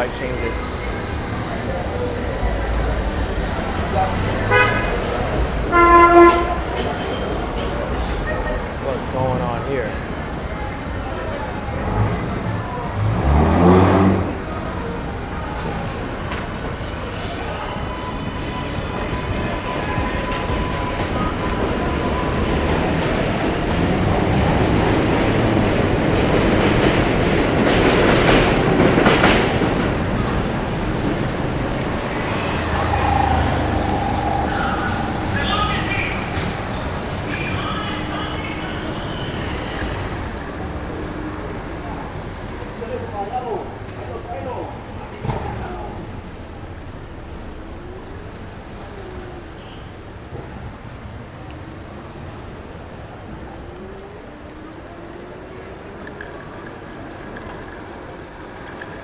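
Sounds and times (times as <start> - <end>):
street traffic: 0.0 - 59.0
subway train passing on steel track: 0.0 - 59.0.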